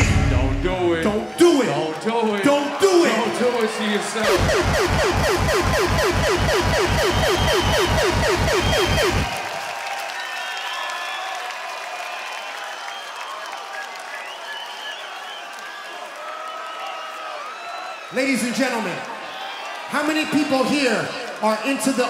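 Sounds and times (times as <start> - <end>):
crowd cheering and applauding: 0.6 - 22.0.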